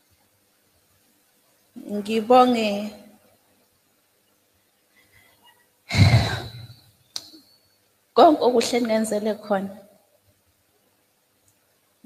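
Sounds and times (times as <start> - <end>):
woman sighing into microphone: 5.9 - 6.8.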